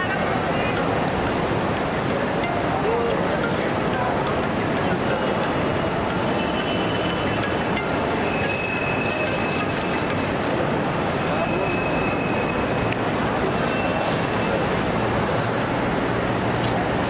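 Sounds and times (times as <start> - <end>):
people's voices: 0.0 - 17.0
traffic: 0.0 - 17.0.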